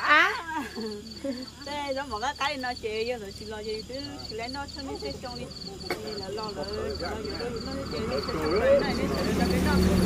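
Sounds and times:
insect chirping in short pulses: 0.0s - 10.0s
people talking: 0.0s - 10.0s
woman's voice: 0.0s - 10.0s.

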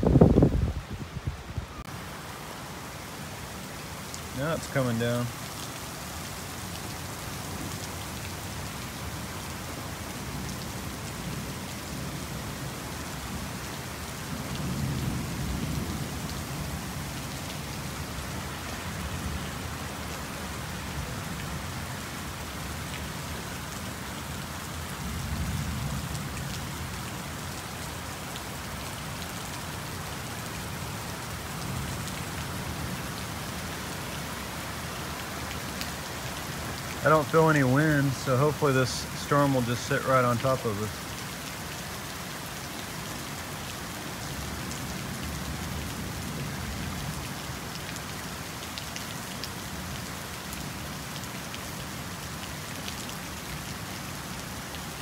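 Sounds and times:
heavy rain on garden beds: 0.0s - 55.0s.

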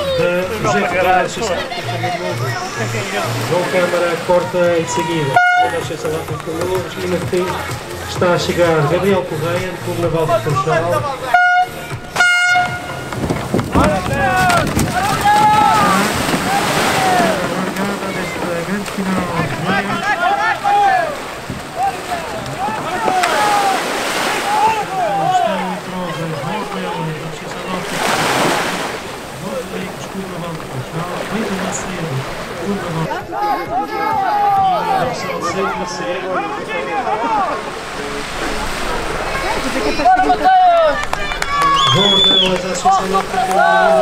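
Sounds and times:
surf splashing: 0.0s - 44.0s
voices shouting: 0.0s - 44.0s
horn blast: 1.9s - 6.2s, 11.2s - 14.5s.

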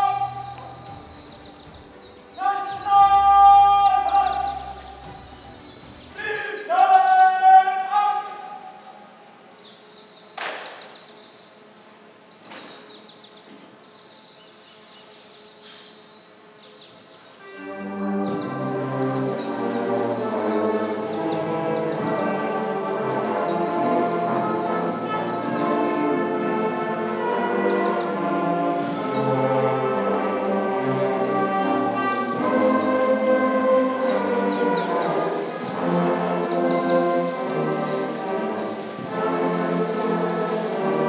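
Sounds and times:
military brass band chord: 0.0s - 13.0s, 17.0s - 41.0s
birds chirping: 0.0s - 41.0s.

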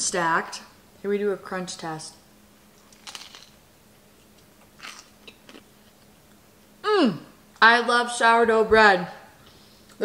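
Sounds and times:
crunchy bite into toast: 4.8s - 5.7s.

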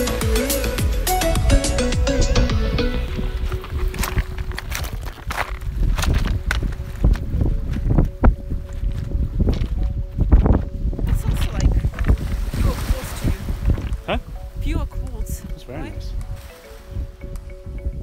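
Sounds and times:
wind rumbling on microphone: 1.4s - 18.0s
footsteps on pebbles: 3.1s - 14.0s.

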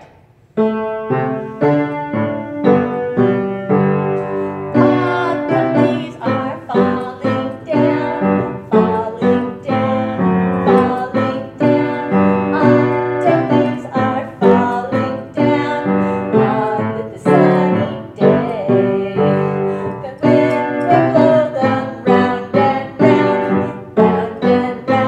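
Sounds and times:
piano playing children's song: 0.0s - 25.0s.

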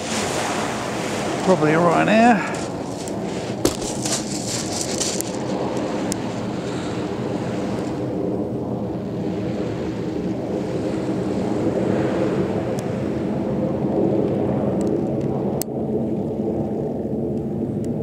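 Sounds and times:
jet engine roar: 0.0s - 18.0s.

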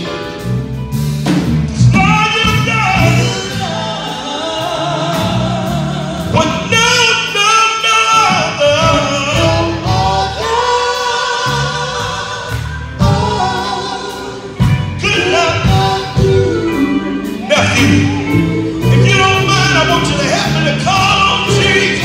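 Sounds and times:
electric bass drums and keyboard: 0.0s - 7.4s, 8.2s - 22.0s
male voices singing in harmony: 2.0s - 22.0s.

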